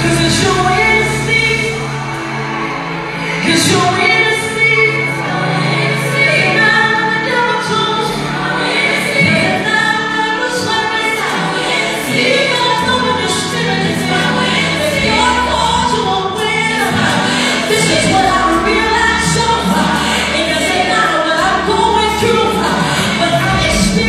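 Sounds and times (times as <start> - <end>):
backing vocalists singing: 0.0 - 24.0
woman singing lead: 0.0 - 24.0.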